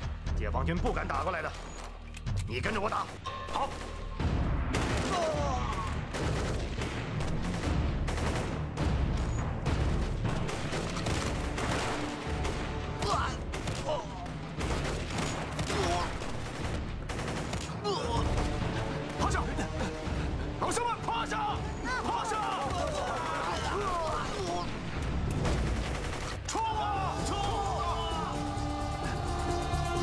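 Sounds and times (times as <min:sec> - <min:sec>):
rapid gunfire: 0:02.9 - 0:20.4, 0:21.8 - 0:26.8
men shouting: 0:17.8 - 0:24.8, 0:26.5 - 0:30.0.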